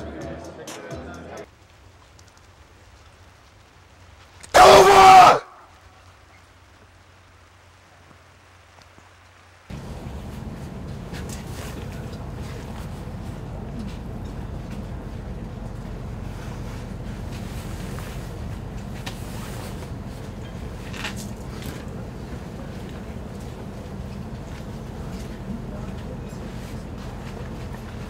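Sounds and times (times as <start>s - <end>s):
person yelling: 4.5s - 5.6s.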